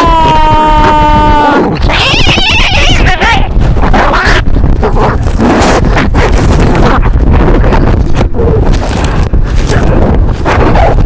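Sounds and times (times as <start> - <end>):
heavy bass rumble: 0.0 - 11.0
loud distorted noise: 0.0 - 11.0.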